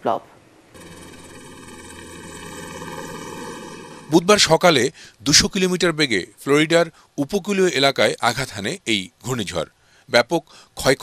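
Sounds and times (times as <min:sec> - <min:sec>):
helicopter flying overhead: 0:00.7 - 0:04.4.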